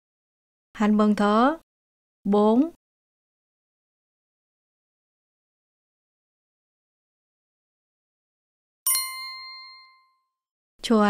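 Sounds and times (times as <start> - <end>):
woman speaking: 0.8 - 1.6, 2.3 - 2.8
bright electronic chime: 8.9 - 10.1.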